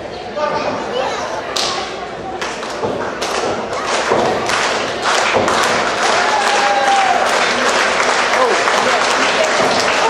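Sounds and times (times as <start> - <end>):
wrestlers thudding on ring: 2.8 - 6.5.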